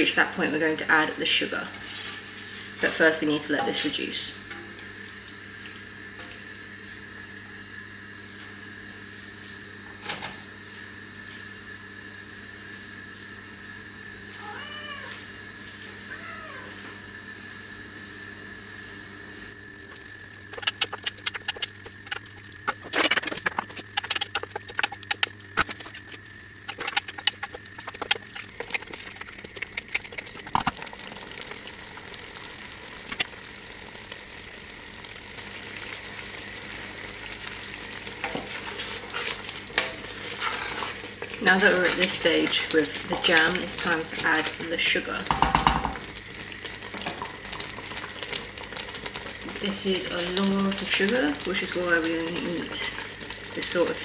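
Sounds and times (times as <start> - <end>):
cooking sizzle: 0.0 - 54.0.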